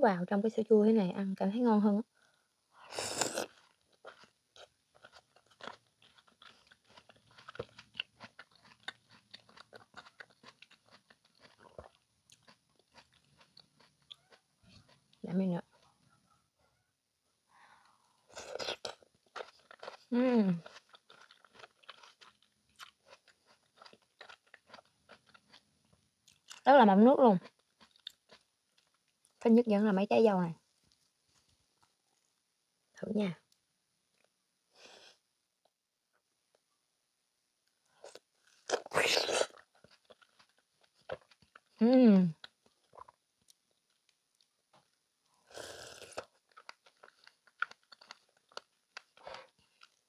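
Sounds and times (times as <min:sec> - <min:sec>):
wet slurpy chewing: 0:02.9 - 0:16.1, 0:18.2 - 0:26.7, 0:27.4 - 0:29.4, 0:38.0 - 0:41.8, 0:42.4 - 0:50.0
crunching bite: 0:03.0 - 0:15.2, 0:18.3 - 0:25.7, 0:45.5 - 0:50.0.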